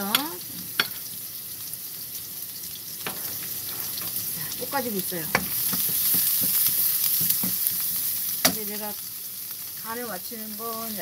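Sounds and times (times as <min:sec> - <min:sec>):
carrots sizzling in oil: 0:00.0 - 0:11.0.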